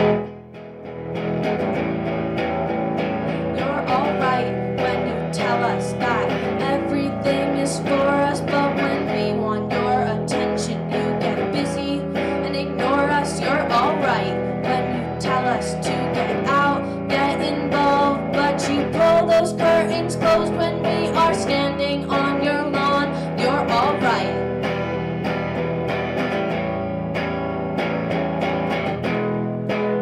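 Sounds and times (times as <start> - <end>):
strummed electric guitar: 0.0 - 30.0
woman singing: 3.3 - 24.6.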